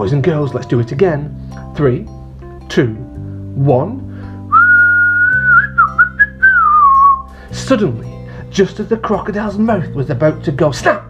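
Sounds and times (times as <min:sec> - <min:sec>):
soft background music: 0:00.0 - 0:11.0
man whistling loudly: 0:04.5 - 0:07.3.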